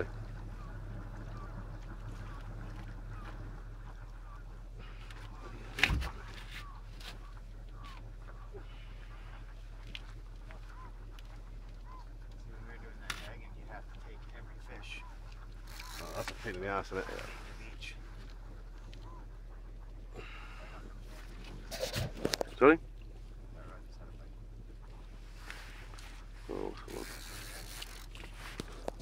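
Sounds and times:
faint distant calls: 0.0s - 29.0s
steady low hum: 0.0s - 29.0s.

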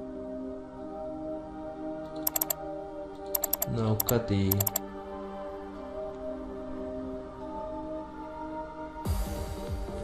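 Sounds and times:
background music: 0.0s - 10.0s
computer keyboard typing: 2.3s - 2.6s, 3.4s - 4.8s.

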